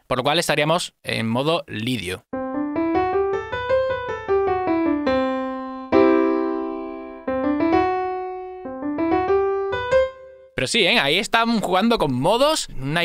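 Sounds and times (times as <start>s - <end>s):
digital piano notes and chords: 2.3s - 11.1s.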